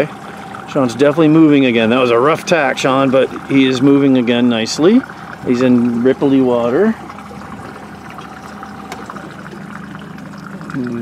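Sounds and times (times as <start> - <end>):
small splashes: 0.0 - 11.0
water lapping against hull: 0.0 - 11.0.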